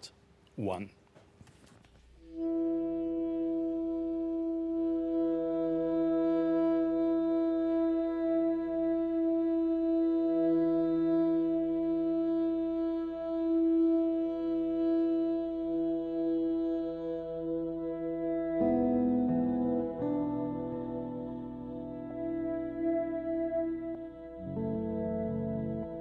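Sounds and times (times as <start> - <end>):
sustained music chord: 2.4 - 26.0.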